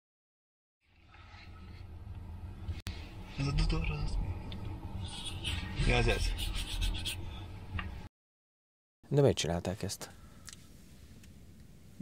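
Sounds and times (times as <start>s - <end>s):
low background hum: 0.9s - 8.1s.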